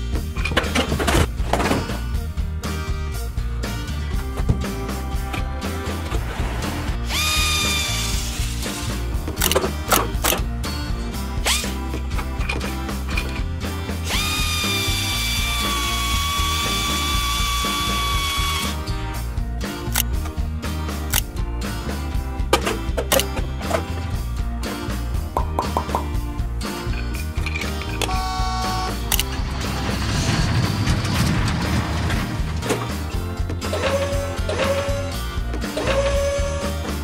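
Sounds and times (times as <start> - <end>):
background music: 0.0 - 37.0
toy electric drill whining: 7.0 - 8.6, 11.5 - 11.8, 14.0 - 18.8, 28.1 - 29.0, 33.7 - 35.2, 35.8 - 36.9.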